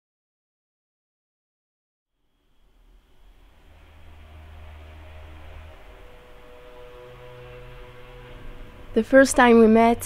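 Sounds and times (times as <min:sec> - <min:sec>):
quiet background music: 0:02.2 - 0:10.0.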